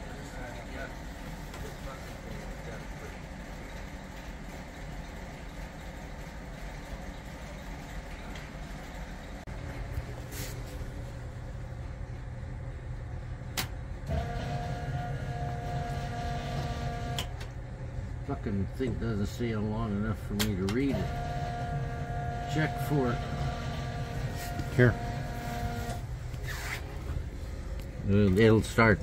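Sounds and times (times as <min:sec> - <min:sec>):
steady whine: 0:07.6 - 0:29.0.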